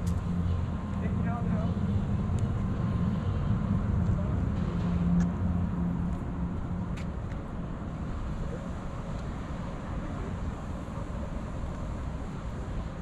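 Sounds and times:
motor traffic hum: 0.0 - 13.0.

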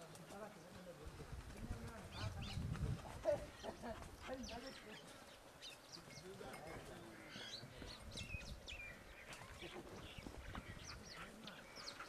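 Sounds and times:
hooves thudding on dirt: 0.0 - 4.8
birds chirping: 0.4 - 12.0
people talking: 6.0 - 8.2, 9.4 - 11.7.

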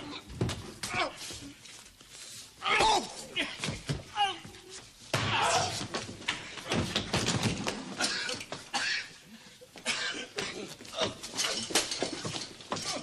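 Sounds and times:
men grunting and crying out: 5.2 - 6.0.

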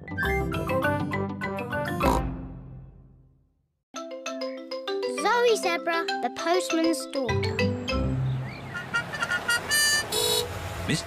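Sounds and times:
horn toots: 8.7 - 10.6.

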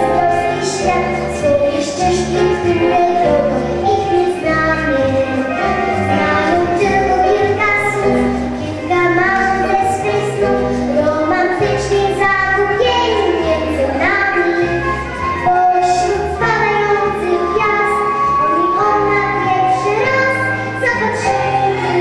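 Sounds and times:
girl singing into microphone: 0.0 - 22.0
instrumental backing music: 0.0 - 22.0.

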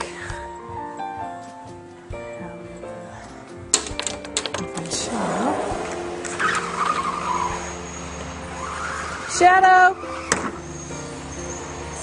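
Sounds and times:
sliding door squeaking and scraping: 4.8 - 12.0.

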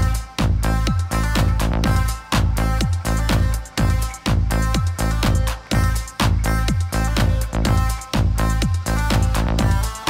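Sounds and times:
deep kick drum beat: 0.0 - 10.0.

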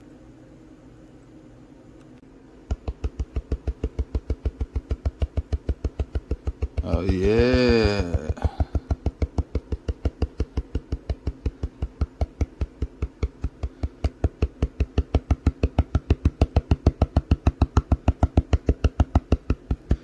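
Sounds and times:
rapid tapping on metal pan: 2.7 - 20.0.

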